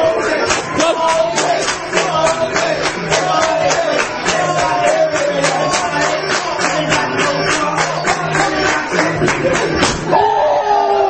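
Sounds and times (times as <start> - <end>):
music with steady beat: 0.0 - 10.2.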